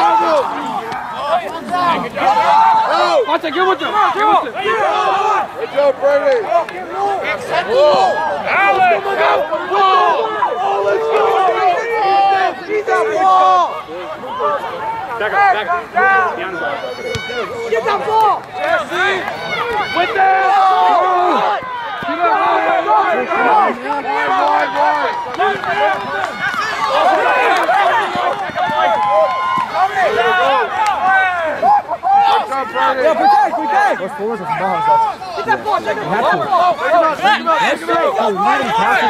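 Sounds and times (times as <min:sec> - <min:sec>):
people shouting: 0:00.0 - 0:39.0.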